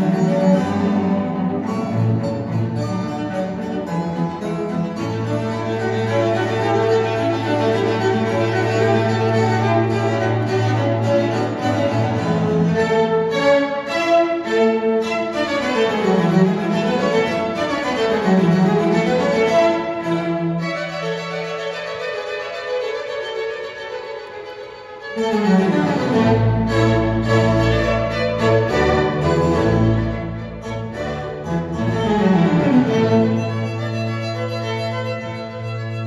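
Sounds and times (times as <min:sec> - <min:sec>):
classical string music over loudspeakers: 0:00.0 - 0:36.0.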